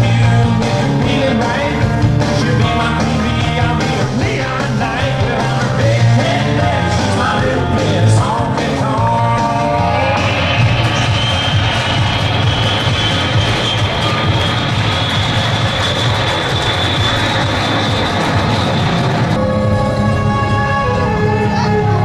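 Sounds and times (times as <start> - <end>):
music: 0.0 - 22.0
jet airliner engine whine: 10.1 - 22.0.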